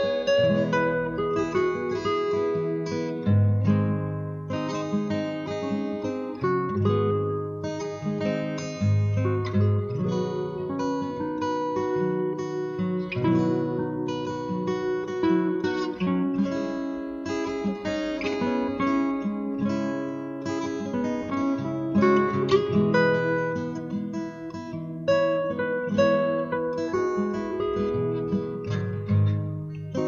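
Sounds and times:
acoustic guitar playing: 0.0s - 30.0s.

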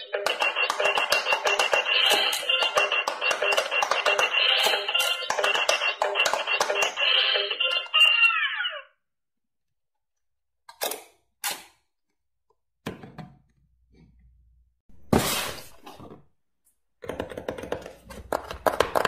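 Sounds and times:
beeping electronic toy tune: 0.0s - 7.9s.

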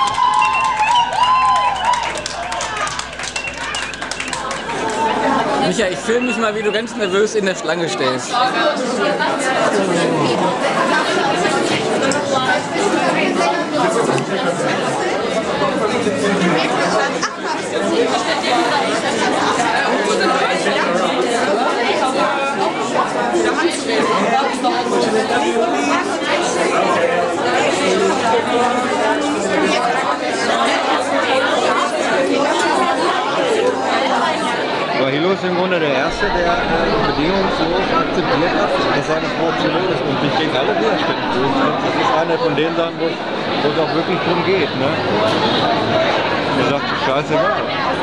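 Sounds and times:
crowd chatter: 0.0s - 48.0s.

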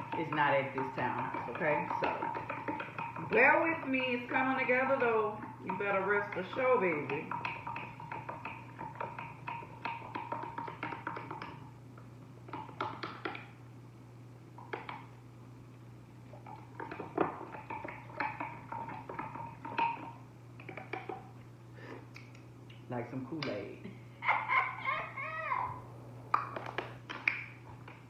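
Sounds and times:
low hum: 25.4s - 28.0s.

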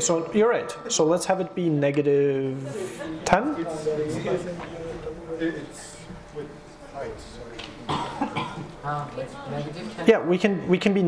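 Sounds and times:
person coughing: 7.9s - 8.7s.

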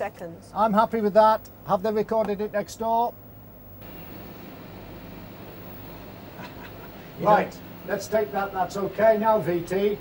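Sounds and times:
equipment hum and hiss: 0.0s - 10.0s.

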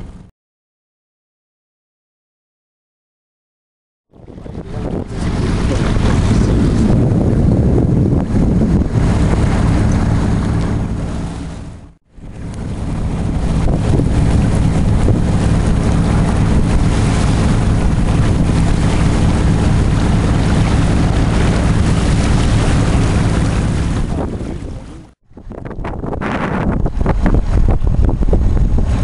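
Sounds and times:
water rushing along hull: 0.0s - 0.3s, 4.1s - 29.0s
low engine hum: 4.1s - 29.0s
wind buffeting microphone: 4.1s - 29.0s.

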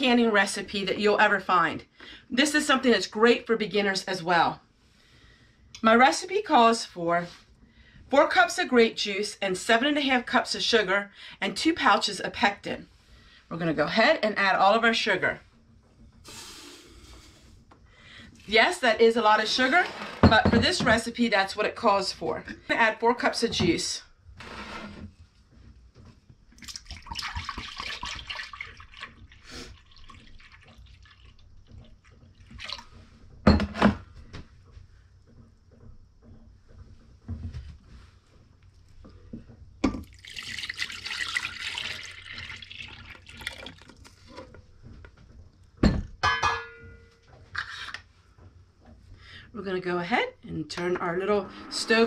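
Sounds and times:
juice pouring into glass: 26.6s - 31.5s, 40.0s - 44.2s
glass vessels knocking on counter: 45.8s - 47.1s.

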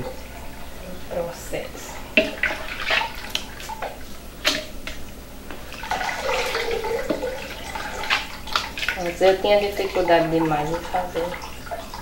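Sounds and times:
hand scooping curd splashing: 2.2s - 4.8s, 5.5s - 12.0s.

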